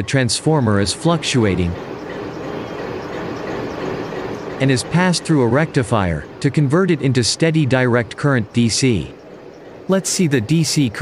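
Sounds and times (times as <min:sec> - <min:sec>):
train running: 0:00.0 - 0:11.0.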